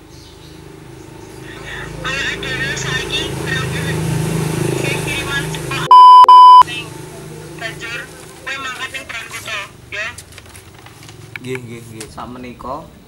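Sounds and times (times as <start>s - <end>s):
high-pitched censor bleeps: 5.9s - 6.6s.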